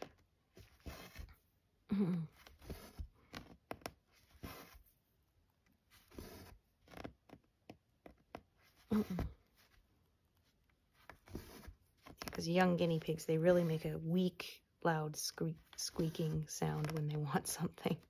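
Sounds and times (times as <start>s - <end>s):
thread rasping through cloth: 0.0s - 1.4s, 2.2s - 5.0s, 5.6s - 14.0s, 15.6s - 18.0s
person humming or half-laughing: 1.9s - 2.4s.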